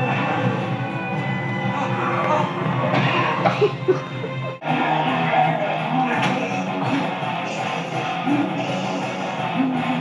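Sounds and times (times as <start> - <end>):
film music from television: 0.0 - 10.0.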